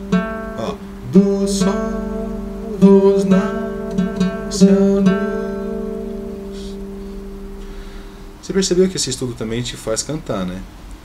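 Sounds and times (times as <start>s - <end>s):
acoustic guitar ringing: 0.0s - 9.8s.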